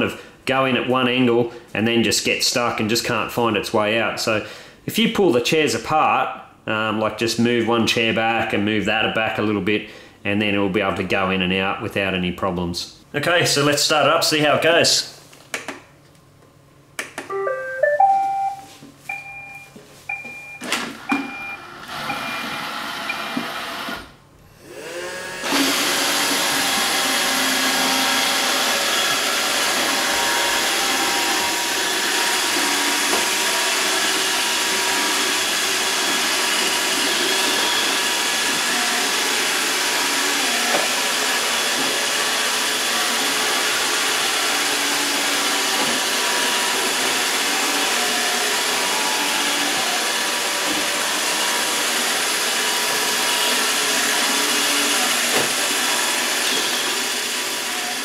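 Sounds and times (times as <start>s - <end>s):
short beeps and clicks: 17.3s - 21.6s
robot vacuum motor and brushes: 21.4s - 58.0s.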